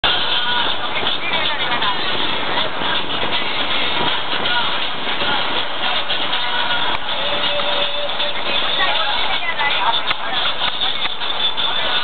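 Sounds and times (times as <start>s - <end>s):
boat motor running: 0.0s - 12.0s
people chattering: 0.0s - 12.0s.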